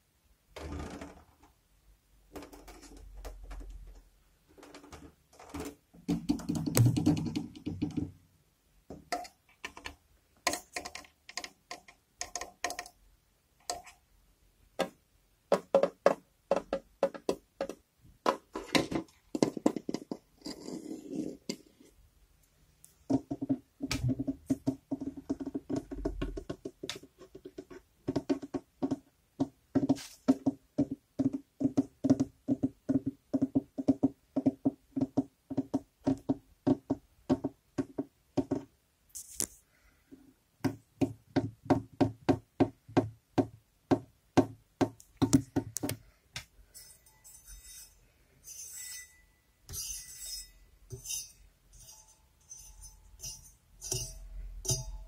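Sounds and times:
fingers tapping hollow objects: 0:05.6 - 0:08.2, 0:08.9 - 0:13.0, 0:14.8 - 0:20.3, 0:23.1 - 0:38.8, 0:40.6 - 0:46.5, 0:53.2 - 0:55.0
scratchy rubbing and scraping: 0:18.6 - 0:22.0.

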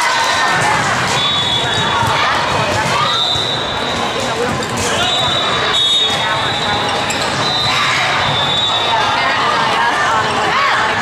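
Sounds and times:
echoing voices: 0:00.0 - 0:11.0
volleyballs struck and bouncing: 0:00.3 - 0:08.6.

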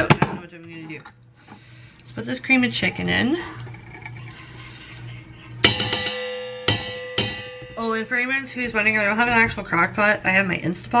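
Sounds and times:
pot ringing metallic tone: 0:03.5 - 0:08.4.

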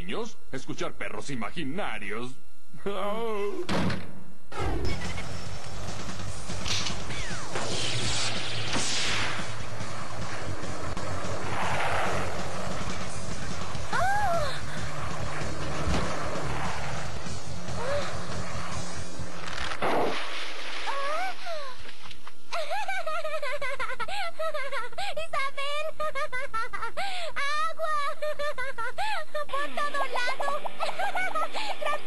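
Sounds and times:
background music: 0:04.5 - 0:20.4, 0:29.5 - 0:32.0
crash: 0:06.6 - 0:13.9, 0:15.0 - 0:21.4
swooshing sweeps: 0:07.2 - 0:21.0.

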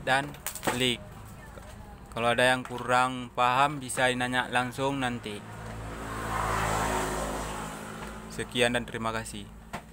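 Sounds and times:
motor vehicle passing by: 0:04.4 - 0:09.9.

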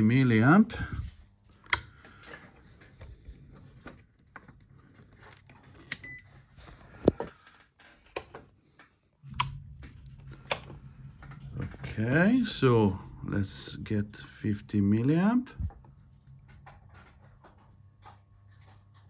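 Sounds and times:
low steady hum: 0:00.0 - 0:19.0
clicks and knocks of knobs: 0:07.0 - 0:12.7.

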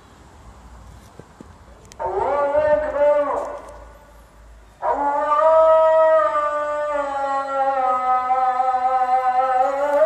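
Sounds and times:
call to prayer chanting: 0:01.8 - 0:10.0.

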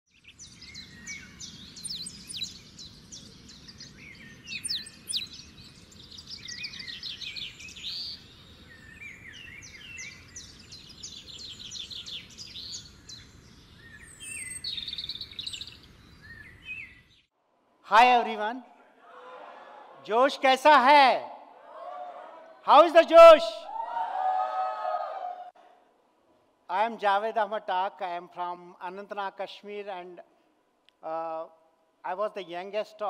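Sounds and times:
birds chirping and trilling: 0:00.1 - 0:17.3.

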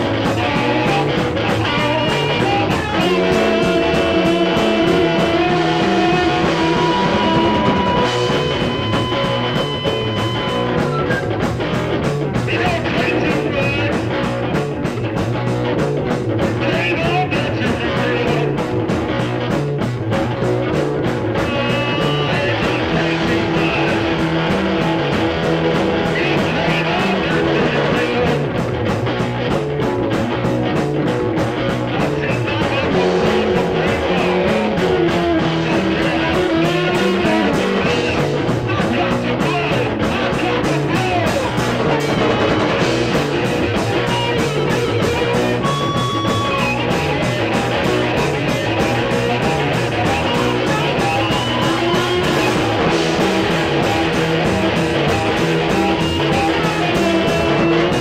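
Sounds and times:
guitar playing bent notes: 0:00.0 - 0:58.0
repeating bass line: 0:00.0 - 0:58.0
steady drum beat: 0:00.0 - 0:58.0.

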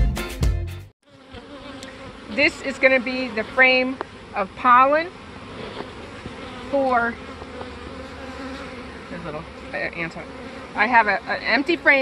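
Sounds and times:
bees buzzing: 0:01.0 - 0:12.0.

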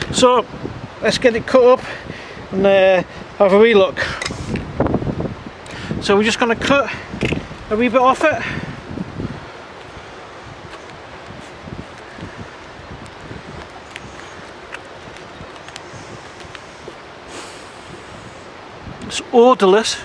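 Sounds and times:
rush of noise: 0:00.0 - 0:20.0
wind noise on microphone: 0:00.0 - 0:20.0.

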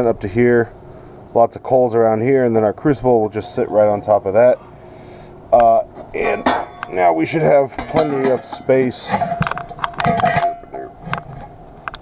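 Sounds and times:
bucket ringing tone: 0:06.2 - 0:11.0
metal knocking on steel bucket: 0:07.6 - 0:11.4.

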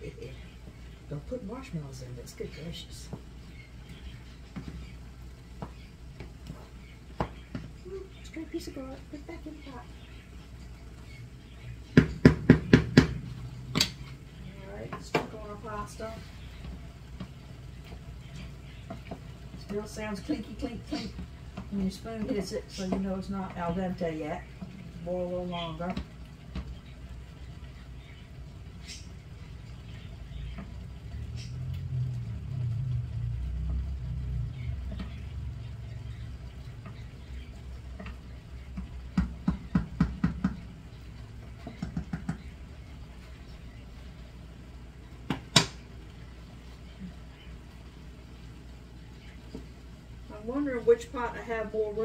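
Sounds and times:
low rumble: 0:29.2 - 0:38.7.

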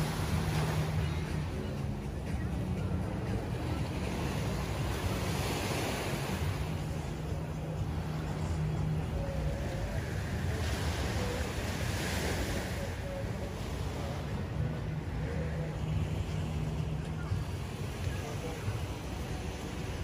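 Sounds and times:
waves washing against rocks: 0:00.0 - 0:20.0.

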